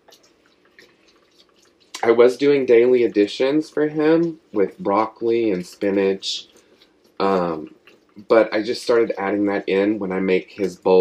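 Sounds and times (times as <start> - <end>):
food mixture stirred in pot: 0.0 - 11.0.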